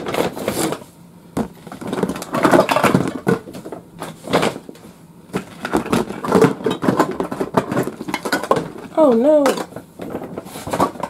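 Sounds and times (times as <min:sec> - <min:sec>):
metal cans clinking: 0:05.9 - 0:11.0.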